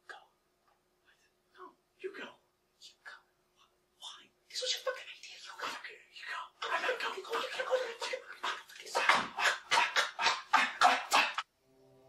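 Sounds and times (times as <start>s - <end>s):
man hissing and snarling: 6.7s - 11.4s.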